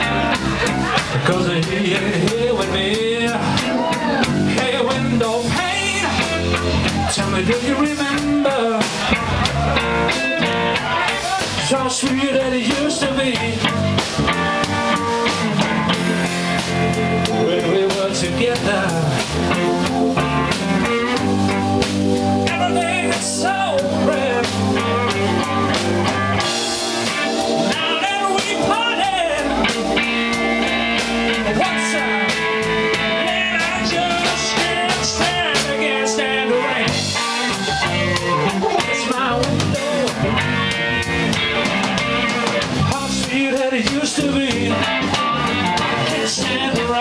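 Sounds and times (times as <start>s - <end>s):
drum kit: 0.0s - 47.0s
electric bass: 0.0s - 47.0s
electric guitar: 0.0s - 47.0s
live blues band playing: 0.0s - 47.0s
organ: 0.0s - 47.0s.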